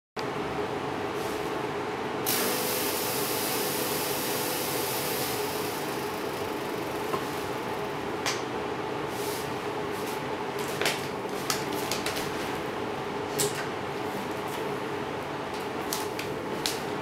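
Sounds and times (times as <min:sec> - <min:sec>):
computer case fans whirring: 0:00.2 - 0:17.0
fog machine hissing: 0:02.3 - 0:07.8.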